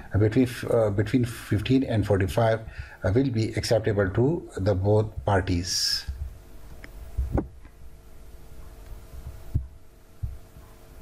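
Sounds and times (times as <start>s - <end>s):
faint hum: 0.0s - 11.0s
dull low thumps: 7.1s - 7.6s.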